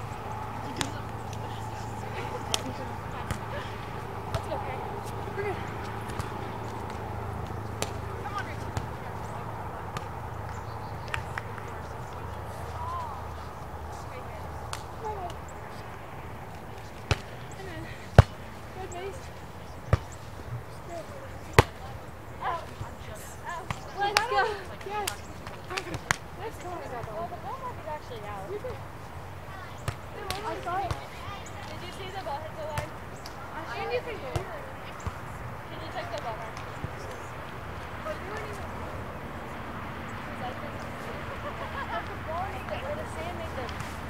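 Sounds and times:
faint distant voices: 0.0 - 44.0
outdoor background noise: 0.0 - 44.0
volleyball smacked by hand: 2.4 - 3.6, 5.8 - 9.0, 14.7 - 15.4, 17.0 - 17.4, 21.5 - 21.8.

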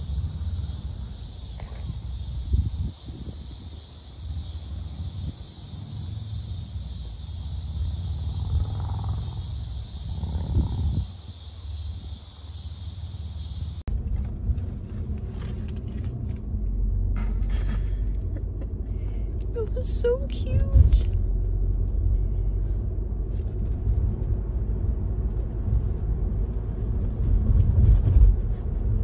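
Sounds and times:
high insect drone: 0.0 - 13.8
car interior rumble: 0.0 - 29.0
low uneven rumble: 0.0 - 29.0.

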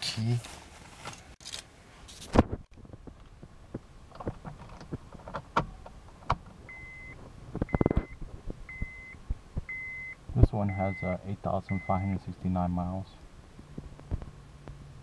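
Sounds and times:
car warning chime beeping: 6.7 - 12.2.

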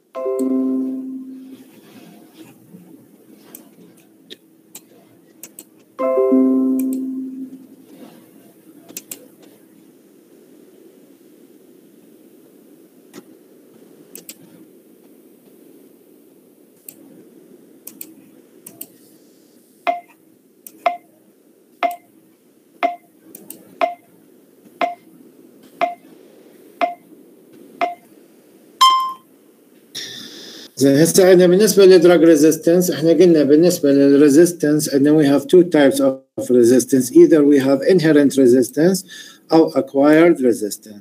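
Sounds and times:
faint steady hum: 0.0 - 41.0
faint clicks: 3.5 - 5.9, 8.9 - 9.5, 14.1 - 15.6, 17.8 - 19.0, 23.3 - 23.6
sharp ringing ticks: 19.9 - 20.2, 21.8 - 22.1, 22.8 - 23.1, 23.8 - 24.0, 24.8 - 25.0, 26.8 - 27.0
longer ping: 28.8 - 29.2.

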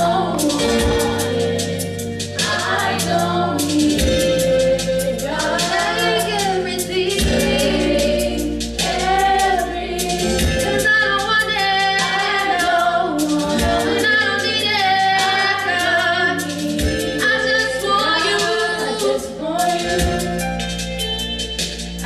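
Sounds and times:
women's gospel group singing: 0.0 - 20.9
percussive beat and bass: 0.0 - 22.0.

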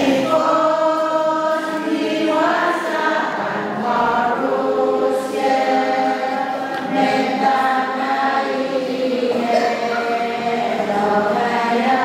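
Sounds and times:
women singing a hymn: 0.0 - 12.0.

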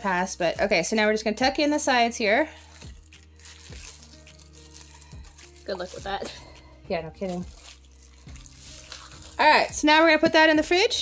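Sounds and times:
soft background music: 0.0 - 11.0
plastic bag rustling: 2.6 - 9.9.

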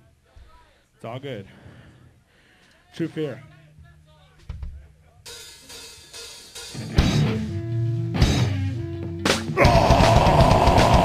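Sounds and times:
metal band playing loud: 5.7 - 11.0
held bass and guitar notes: 6.8 - 11.0
drum and cymbal hits: 9.3 - 11.0.

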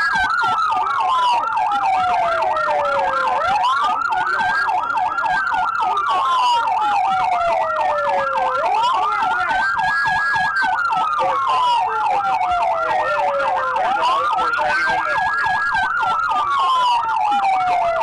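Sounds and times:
police siren fast yelp: 0.0 - 18.0
police siren slow wail: 0.0 - 18.0.

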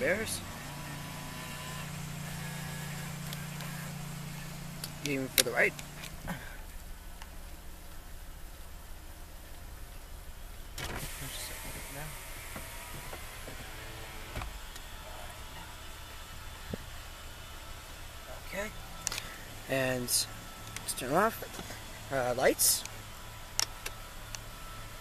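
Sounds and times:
power window motor: 0.0 - 6.4, 10.7 - 25.0
car engine idling: 0.0 - 25.0.

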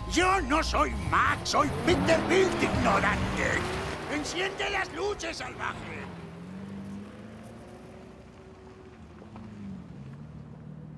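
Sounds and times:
truck engine pulling away: 0.0 - 10.9.

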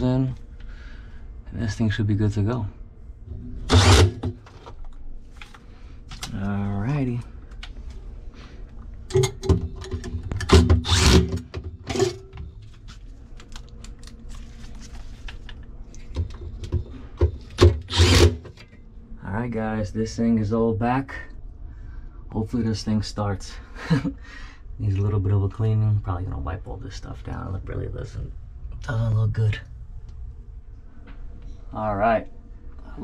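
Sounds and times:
cordless drill driving screws: 3.7 - 4.2, 10.5 - 11.4, 17.6 - 18.4.

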